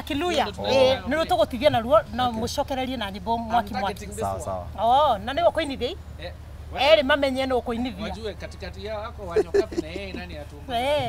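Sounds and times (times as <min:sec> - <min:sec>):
person talking: 0:00.3 - 0:01.2, 0:07.9 - 0:08.2, 0:09.4 - 0:10.3.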